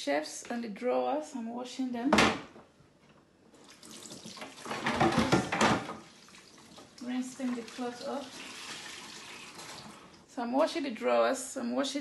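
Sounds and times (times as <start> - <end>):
tap water splashing into sink: 3.6 - 10.2.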